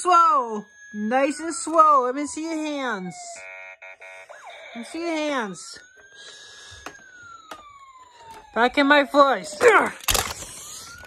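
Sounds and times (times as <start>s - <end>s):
plastic toys being handled: 9.6s - 11.0s.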